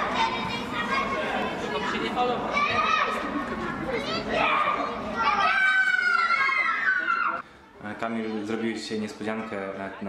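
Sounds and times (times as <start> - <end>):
children shouting and chattering: 0.0 - 10.0.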